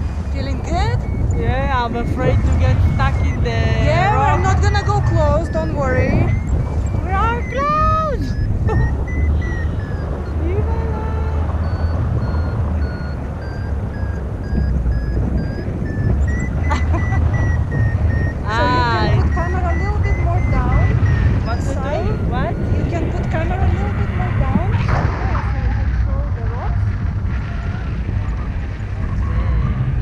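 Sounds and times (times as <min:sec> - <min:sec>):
variometer beeping rapidly: 0:00.0 - 0:30.0
wind rumble on microphone: 0:00.0 - 0:30.0.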